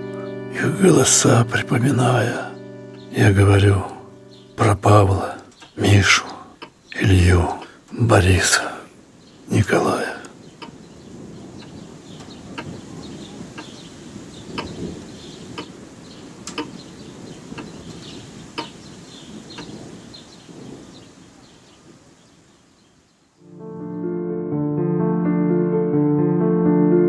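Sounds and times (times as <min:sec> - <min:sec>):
piano music: 0:00.0 - 0:08.7, 0:23.4 - 0:27.0
faint bird chirps: 0:09.1 - 0:23.5.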